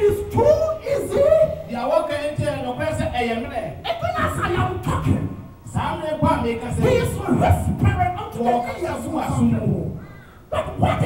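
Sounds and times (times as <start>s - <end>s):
man preaching through a microphone: 0.0s - 11.0s.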